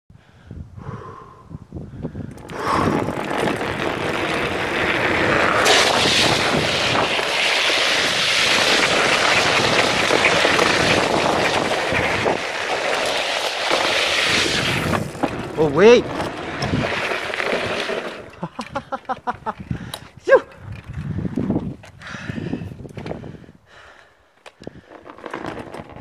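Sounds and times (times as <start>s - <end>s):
wind rushing on microphone: 0.2s - 23.9s
wheels rolling on asphalt: 0.8s - 26.0s.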